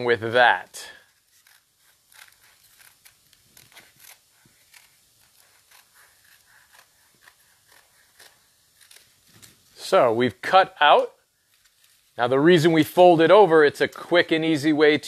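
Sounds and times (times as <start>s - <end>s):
paper crinkling: 1.0s - 9.8s, 11.4s - 12.2s
scissors snipping wax paper: 1.1s - 9.6s.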